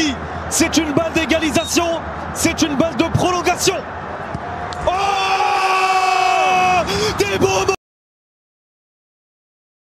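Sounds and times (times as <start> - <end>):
stadium crowd noise: 0.0 - 7.8.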